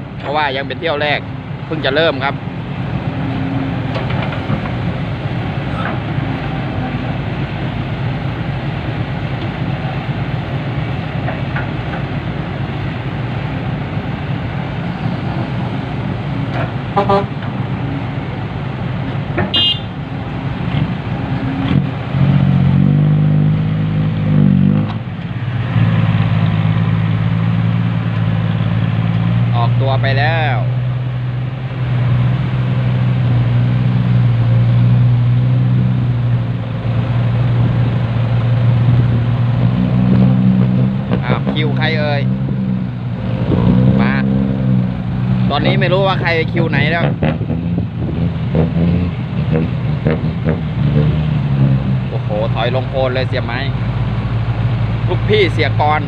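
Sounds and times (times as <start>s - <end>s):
excavator diesel engine running: 0.0s - 39.8s
dump truck engine revving: 0.0s - 56.0s
short horn toot: 16.9s - 17.4s, 19.5s - 20.0s.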